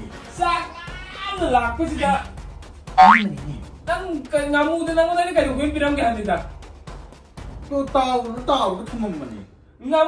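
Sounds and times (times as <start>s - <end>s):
cartoon rising whistle sweep: 3.0s - 3.3s.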